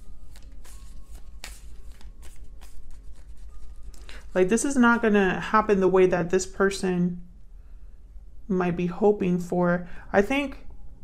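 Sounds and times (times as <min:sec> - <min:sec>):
cards being shuffled: 0:00.0 - 0:04.7
low steady hum: 0:00.0 - 0:11.0.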